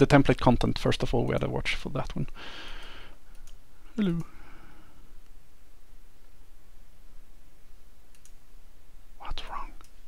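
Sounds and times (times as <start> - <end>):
man muttering: 4.0 - 4.3
faint click: 9.8 - 10.0.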